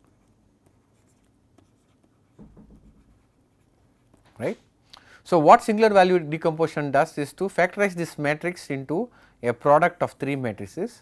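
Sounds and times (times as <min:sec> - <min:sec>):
stylus scratching on pen tablet: 0:00.0 - 0:04.2.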